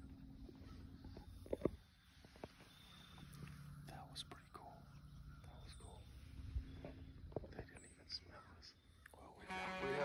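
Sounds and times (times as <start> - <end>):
people whispering: 3.4 - 6.5, 7.3 - 10.0.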